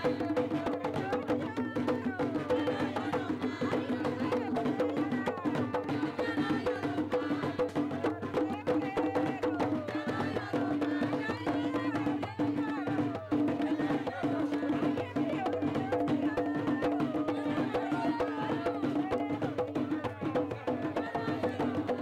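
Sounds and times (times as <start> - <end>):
hand drums: 0.0 - 22.0
voices singing: 0.0 - 22.0.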